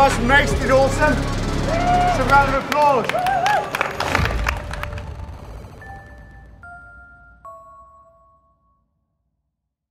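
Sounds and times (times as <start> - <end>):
small group clapping: 2.1 - 5.4.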